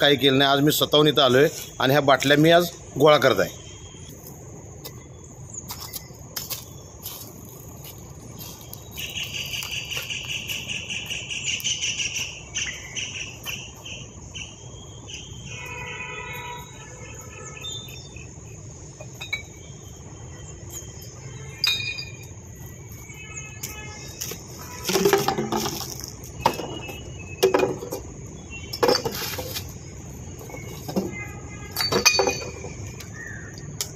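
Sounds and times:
insects trilling: 0.0s - 33.9s.

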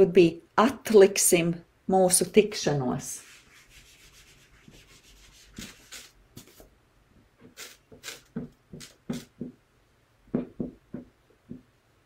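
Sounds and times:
eraser rubbing on whiteboard: 3.2s - 6.7s, 7.4s - 9.5s.

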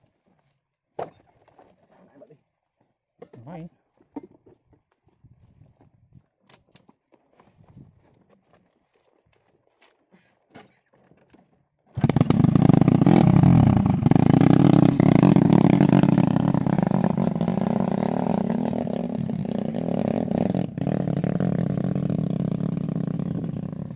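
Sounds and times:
small petrol engine running: 12.0s - 18.6s.

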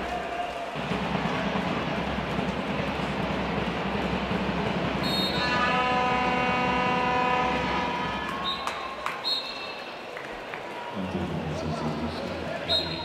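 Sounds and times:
crowd noise in arena: 0.0s - 13.0s
multi-tone horn blast: 5.0s - 8.5s.

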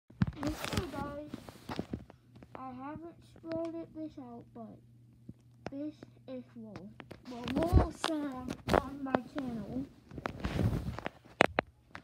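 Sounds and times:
microphone rubbing against shirt: 0.4s - 2.0s, 8.6s - 11.4s.

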